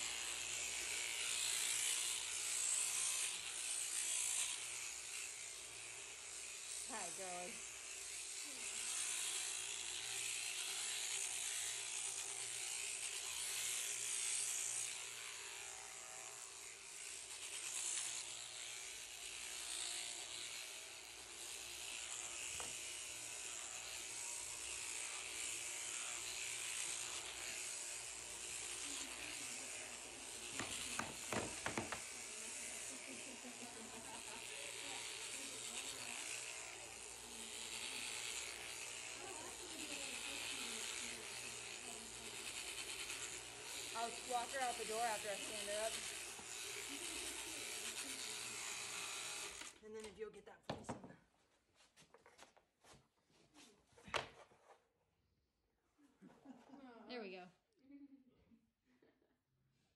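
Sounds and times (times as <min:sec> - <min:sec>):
electric shears running: 0:00.0 - 0:50.1.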